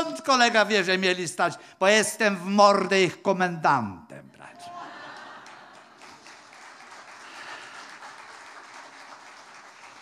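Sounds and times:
audience applauding: 4.8 - 10.0.

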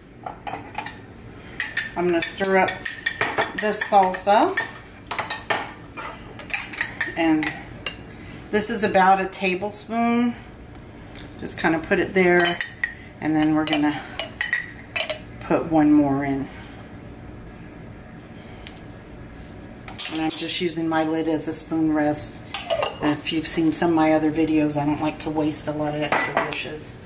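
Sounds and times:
steady low hum: 0.0 - 27.0.

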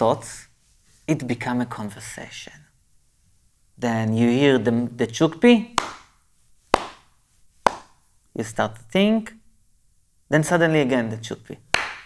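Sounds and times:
wooden clapper claps: 5.8 - 6.2, 6.8 - 7.1, 7.7 - 8.0, 11.7 - 12.0.

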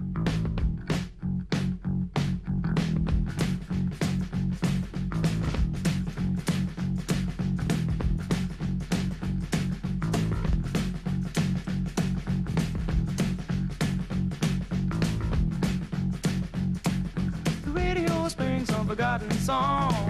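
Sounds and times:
bass guitar: 0.0 - 20.0
drums beat: 0.0 - 20.0.

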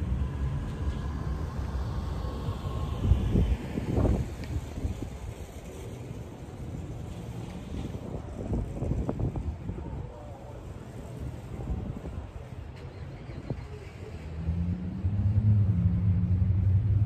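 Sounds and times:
faint vehicle hum: 0.0 - 17.0
wind rumbling on microphone: 0.0 - 17.0.

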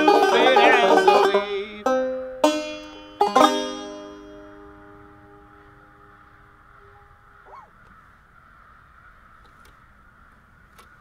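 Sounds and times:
banjo chord ringing: 0.0 - 6.2
short bird call: 5.4 - 8.8.

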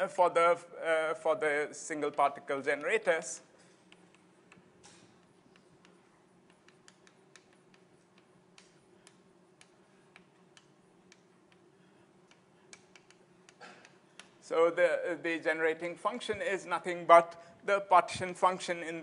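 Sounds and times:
low room hum: 0.0 - 19.0
chalk tapping on blackboard: 3.8 - 14.4.

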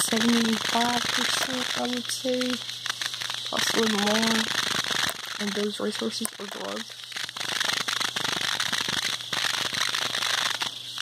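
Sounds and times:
dense crackling and rustling: 0.0 - 11.0.

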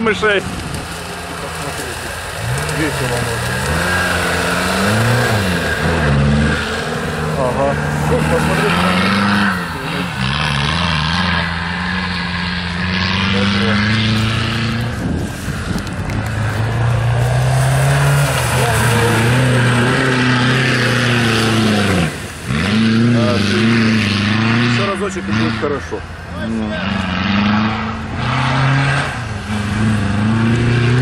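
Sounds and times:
off-road engine revving: 0.0 - 31.0.

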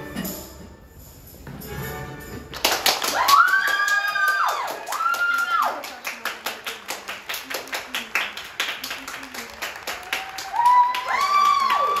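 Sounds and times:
rhythmic clapping: 2.5 - 12.0.

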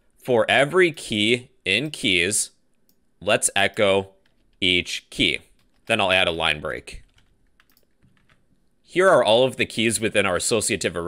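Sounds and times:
keyboard typing: 4.2 - 4.6, 5.5 - 6.0, 7.0 - 8.7.

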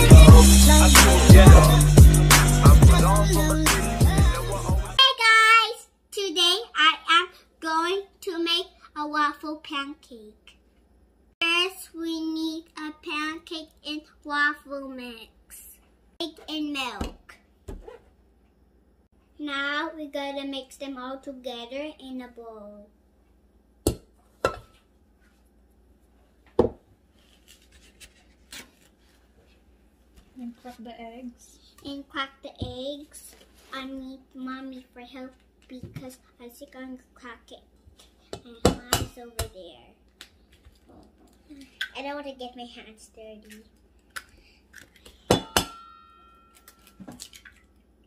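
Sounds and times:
kitchen utensils knocking on table: 45.3 - 46.2
bowl ringing: 45.4 - 47.5.

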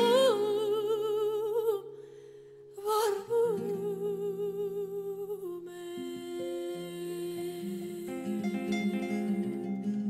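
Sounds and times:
woman singing with vibrato: 0.0 - 2.0, 2.7 - 10.0.

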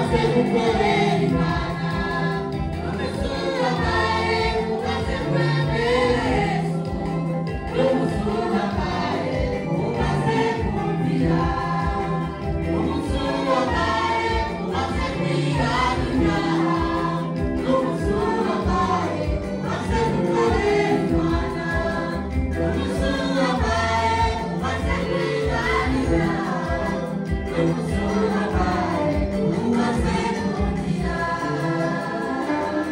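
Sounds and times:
gospel choir singing: 0.0 - 32.9
rhythmic backing beat: 0.0 - 32.9.

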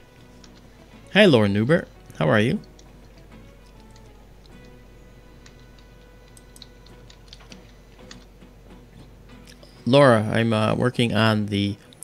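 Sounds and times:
mouse and keyboard clicks: 5.4 - 8.3.

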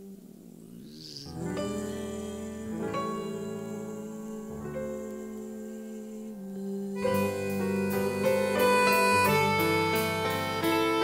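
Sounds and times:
slow piano chords and notes: 0.0 - 11.0.

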